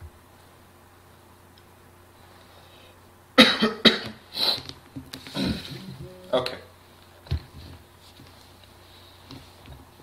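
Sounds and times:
faint room hum: 0:00.0 - 0:10.0
person coughing: 0:03.4 - 0:04.2.

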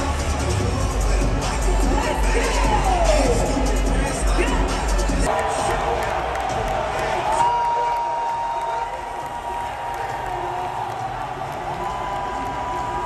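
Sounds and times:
crowd cheering and applauding: 0:05.2 - 0:13.0.

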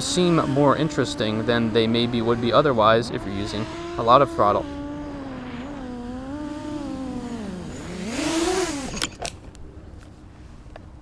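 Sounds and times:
quadcopter motors whining: 0:00.0 - 0:09.4.

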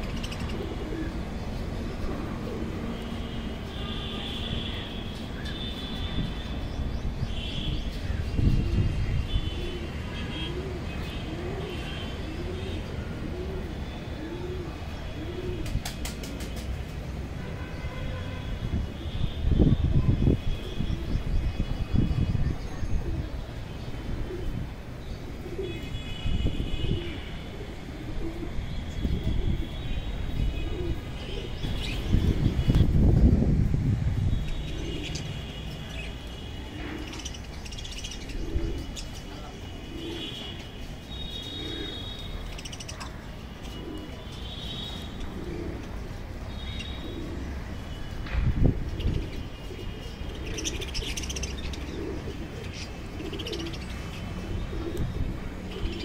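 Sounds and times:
dove cooing: 0:00.0 - 0:01.3, 0:02.0 - 0:02.9, 0:09.6 - 0:16.4, 0:26.8 - 0:28.6, 0:30.6 - 0:32.5, 0:34.6 - 0:35.4, 0:38.1 - 0:40.5, 0:41.4 - 0:43.0, 0:43.6 - 0:44.3, 0:45.2 - 0:47.7, 0:48.8 - 0:56.0
budgerigars chirping and chattering: 0:37.0 - 0:39.3, 0:41.8 - 0:43.1, 0:50.3 - 0:52.1.

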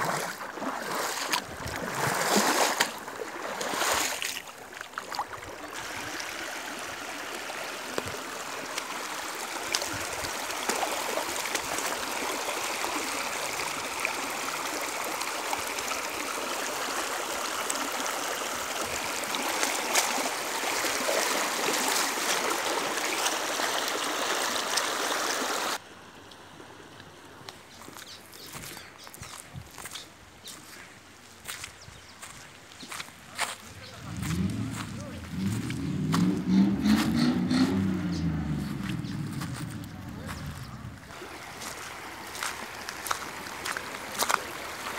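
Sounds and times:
stream babbling over stones: 0:00.0 - 0:25.8, 0:29.8 - 0:44.9.

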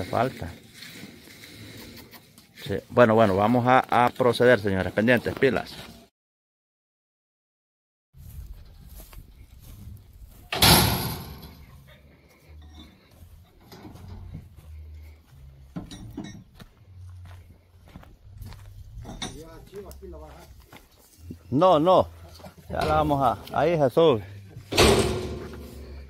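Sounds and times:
metal feeder bang: 0:10.5 - 0:11.7, 0:24.7 - 0:26.0.

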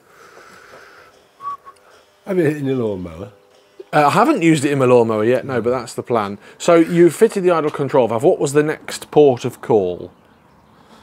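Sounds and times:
short high whistle-like tone: 0:01.4 - 0:01.8.

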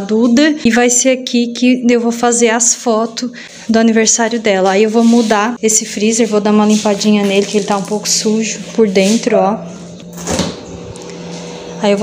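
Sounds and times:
steady low hum: 0:03.2 - 0:12.0
cooler door opening clunk: 0:10.1 - 0:10.7.

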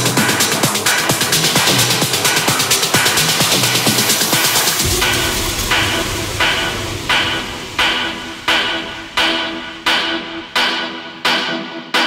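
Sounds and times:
techno music: 0:00.0 - 0:11.1.

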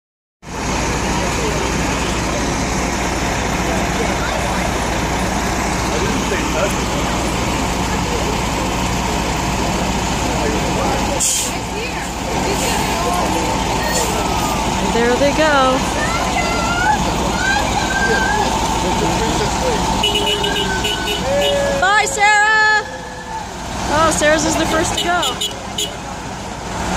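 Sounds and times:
diesel bus engine rumbling: 0:00.4 - 0:26.9
short air hiss: 0:11.2 - 0:11.6.

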